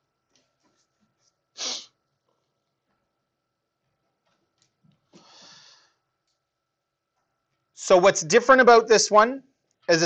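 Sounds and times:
sharp burst of breath: 1.6 - 1.9, 5.2 - 6.0.

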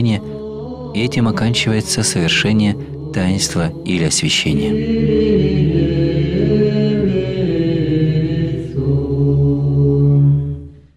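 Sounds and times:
men singing church chant: 0.0 - 10.7.

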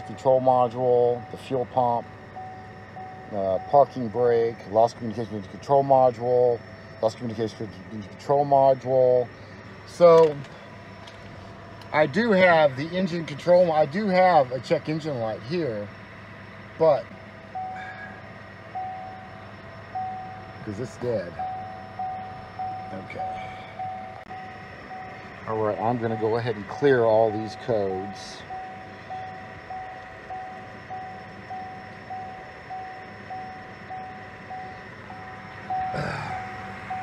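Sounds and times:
dashboard warning beep: 0.0 - 6.9, 16.9 - 37.0.

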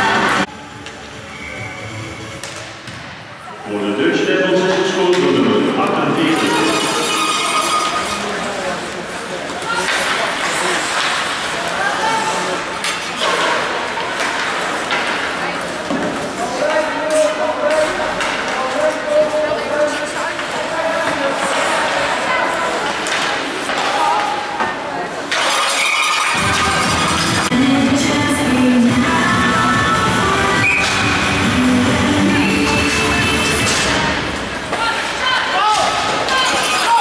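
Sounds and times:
hockey sticks and puck clacking: 2.4 - 3.0, 6.3 - 11.9, 12.5 - 27.5, 30.6 - 31.1, 32.5 - 37.0
music: 26.3 - 34.2
players and spectators calling out: 34.6 - 37.0.

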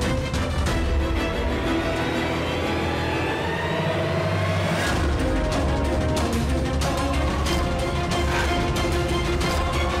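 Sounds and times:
dramatic background score: 0.0 - 10.0.

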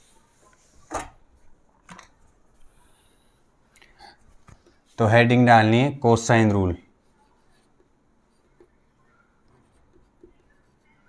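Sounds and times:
marker pen on whiteboard: 4.2 - 5.2, 6.3 - 11.0.

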